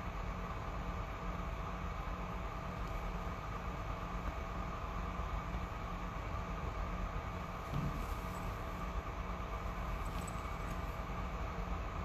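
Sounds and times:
room noise hum and hiss: 0.0 - 12.0.

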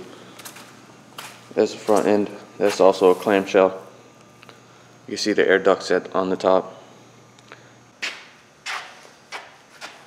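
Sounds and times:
footsteps scuffing on concrete: 0.3 - 3.6, 8.0 - 10.0.

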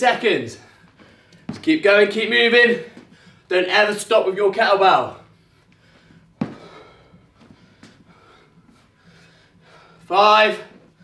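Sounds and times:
man breathing hard: 0.6 - 1.5, 2.9 - 3.5, 5.2 - 10.1.

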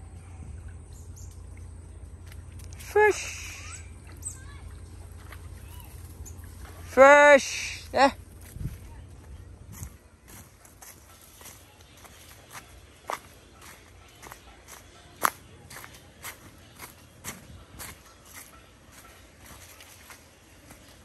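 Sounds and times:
footsteps crunching on dry leaves: 8.2 - 21.0.

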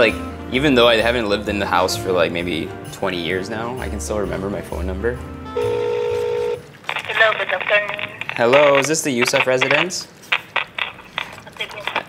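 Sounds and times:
telephone ringing tone: 5.5 - 6.6.

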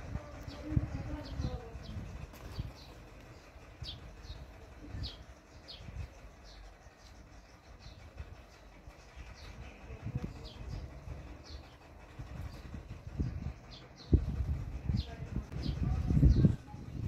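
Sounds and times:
low rumbles and thumps: 0.0 - 17.0.

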